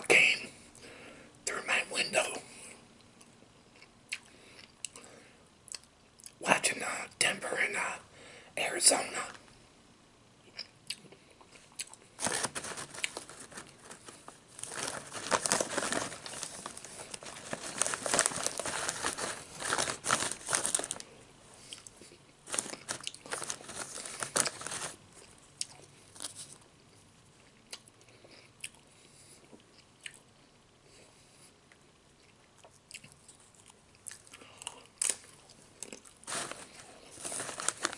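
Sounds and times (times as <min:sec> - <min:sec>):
crunching and chewing chips: 0:10.5 - 0:30.3, 0:32.2 - 0:37.9
plastic chip bag crinkling: 0:11.9 - 0:21.2, 0:22.4 - 0:26.6, 0:35.0 - 0:37.9.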